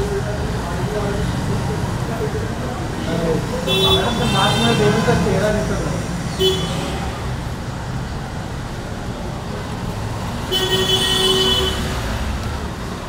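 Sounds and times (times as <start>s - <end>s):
road traffic rumble: 0.0s - 13.0s
vehicle horn: 3.7s - 5.2s, 6.4s - 7.2s, 10.5s - 11.9s.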